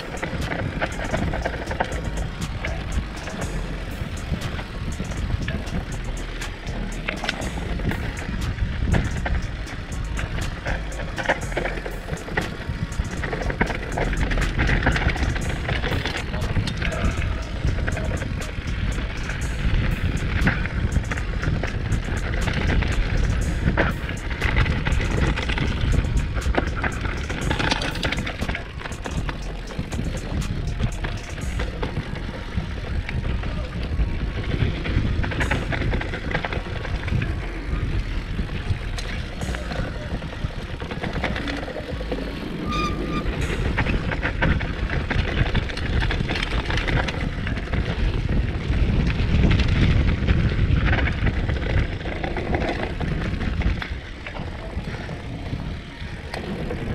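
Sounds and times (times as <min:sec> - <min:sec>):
bike rattles and clicks: 0:00.0 - 0:56.9
bike tyres rolling on gravel: 0:00.0 - 0:56.9
wind on microphone: 0:00.0 - 0:56.9.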